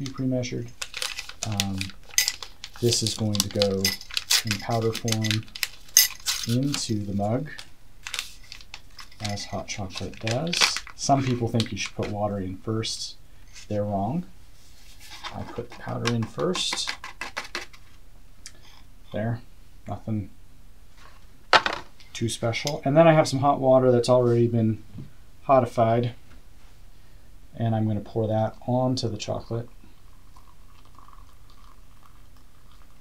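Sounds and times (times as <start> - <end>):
paper packet crinkling: 0.7 - 12.1
hot water trickling into a mug: 29.6 - 33.0.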